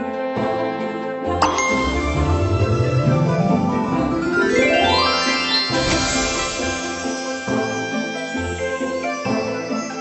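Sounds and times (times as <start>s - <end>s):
slot game music: 1.3s - 8.4s
bright chiming dings: 1.4s - 2.8s.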